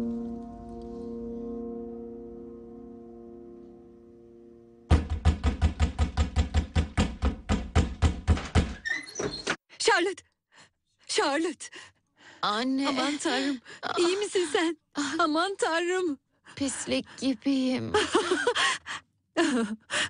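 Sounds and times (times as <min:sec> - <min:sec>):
pounding on wooden door: 0:04.9 - 0:08.9.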